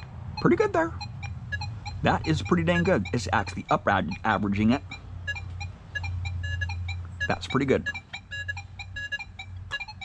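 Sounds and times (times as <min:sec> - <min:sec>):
metal detector short beeps: 0:00.0 - 0:10.0
steady low hum: 0:00.0 - 0:10.0.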